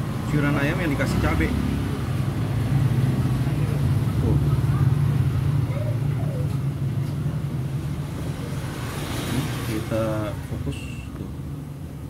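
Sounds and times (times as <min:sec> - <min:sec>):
road traffic engine rumble: 0:00.0 - 0:12.0.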